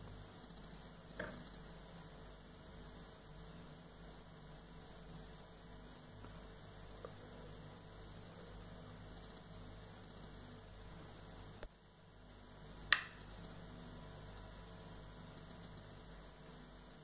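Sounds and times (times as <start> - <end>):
room hum and hiss: 0.0 - 17.0
sharp click: 12.9 - 13.2
small click: 12.9 - 13.2.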